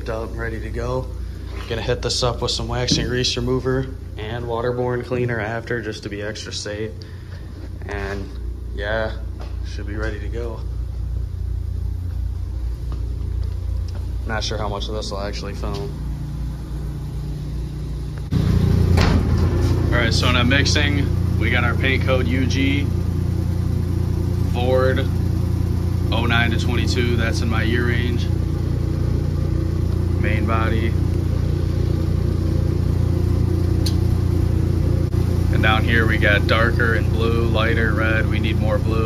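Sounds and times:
low machine drone: 0.0 - 39.0
low mechanical hum: 0.0 - 39.0.

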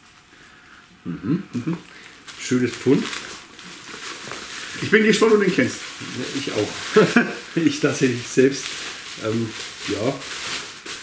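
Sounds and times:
bubble wrap rustling: 0.0 - 11.0
person speaking: 1.0 - 3.4, 4.4 - 10.4.

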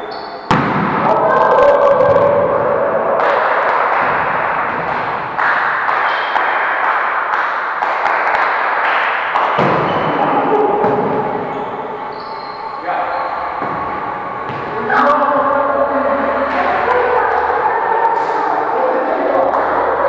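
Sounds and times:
players' voices echoing: 0.0 - 20.0
ball thuds: 13.6 - 14.8.

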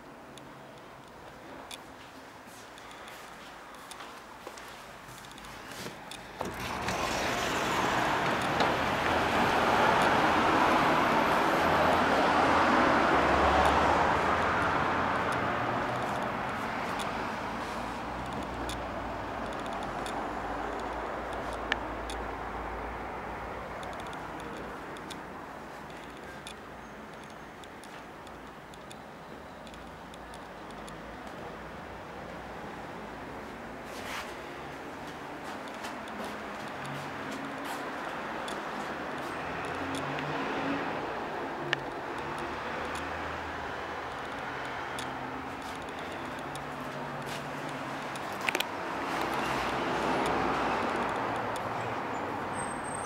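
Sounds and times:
road traffic noise: 0.0 - 53.0.

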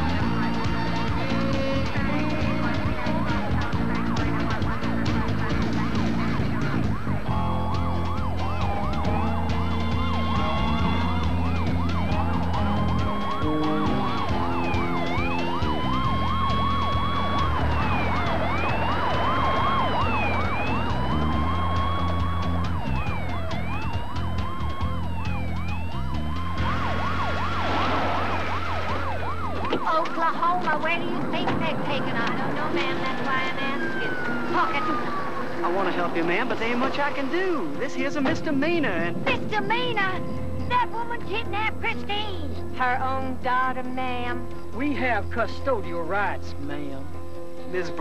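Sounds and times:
police sirens wailing: 0.0 - 42.6.

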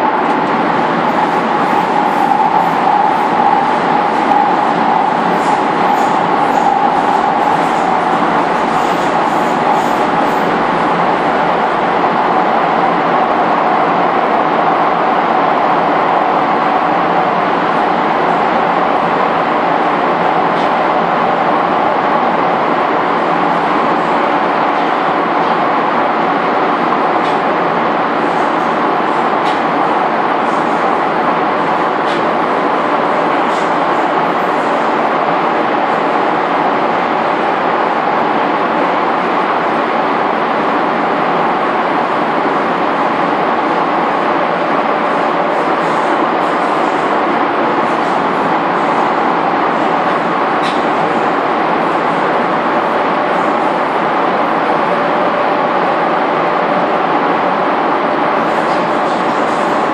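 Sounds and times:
train rumbling in tunnel: 0.0 - 59.9.

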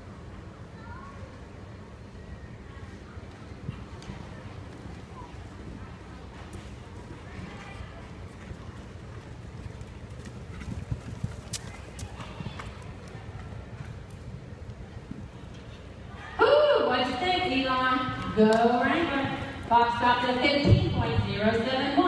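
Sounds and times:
horse hoofbeats on dirt: 6.3 - 15.8.

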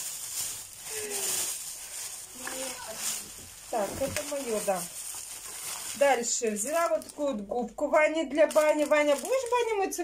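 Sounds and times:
shopping bags rustling: 0.0 - 10.0
faint voice: 0.8 - 1.5.

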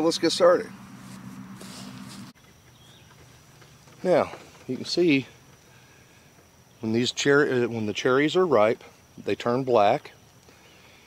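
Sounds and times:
low hum: 0.0 - 4.0
quiet hiss: 0.0 - 11.0.

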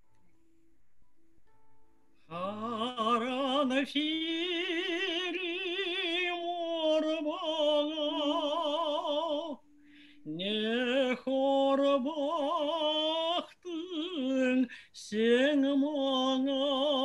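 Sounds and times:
woman singing slow song: 2.3 - 17.0.

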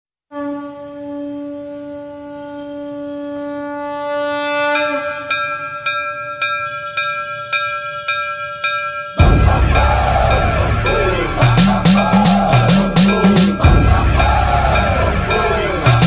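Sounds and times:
conch shell blown: 0.3 - 5.7
bell ringing: 5.3 - 16.0
devotional music with singing: 9.2 - 16.0.

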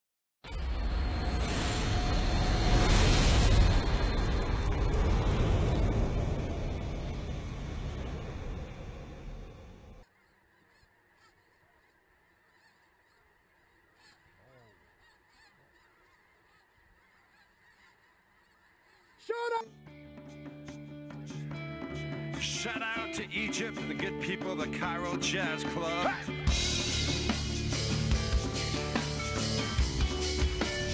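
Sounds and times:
loud rushing noise: 0.6 - 10.0
snow geese honking: 10.0 - 19.6.

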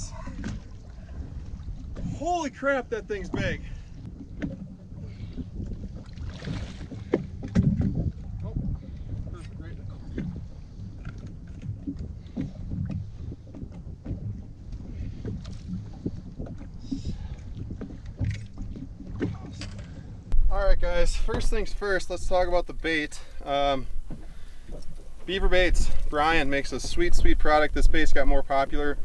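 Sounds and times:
water splashing against boat: 0.0 - 29.0
wind on microphone: 3.3 - 29.0.

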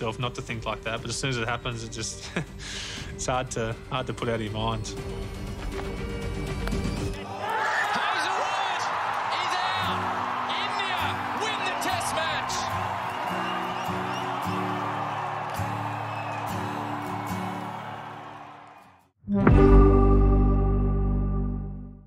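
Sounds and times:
background music low held notes: 0.0 - 7.1
shrill whoops and shouts: 7.2 - 19.0
stadium crowd roaring: 7.2 - 19.1.

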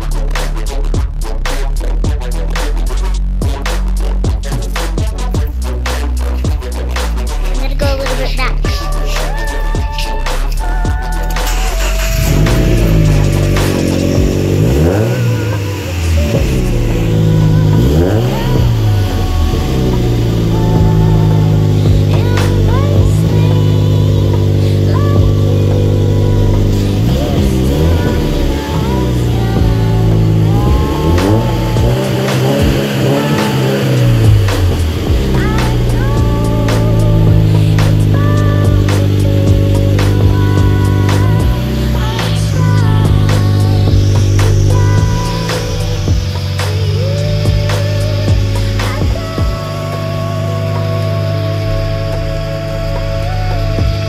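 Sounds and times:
car engine revving: 0.0 - 54.0
music: 0.0 - 54.0.

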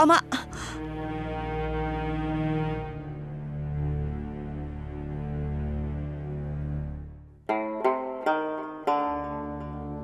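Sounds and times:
plucked string notes: 7.4 - 10.0.

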